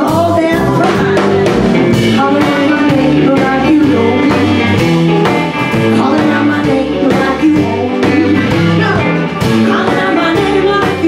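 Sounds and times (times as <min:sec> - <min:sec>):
bass guitar: 0:00.0 - 0:11.0
drum kit: 0:00.0 - 0:11.0
electric guitars: 0:00.0 - 0:11.0.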